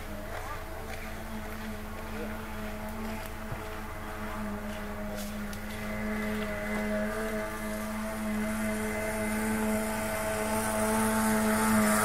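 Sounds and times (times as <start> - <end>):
vehicle engine running steadily: 0.0 - 12.0.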